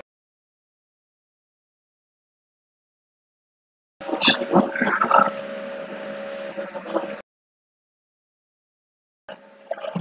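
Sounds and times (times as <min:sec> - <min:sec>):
garbled voice-like fragment: 0:04.0 - 0:05.4
two-tone hum: 0:04.0 - 0:07.2, 0:09.3 - 0:10.0.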